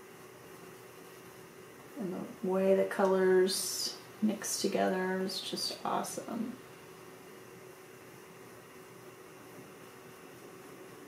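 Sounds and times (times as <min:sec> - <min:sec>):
faint background hiss: 0:00.0 - 0:11.0
low even hum: 0:00.0 - 0:11.0.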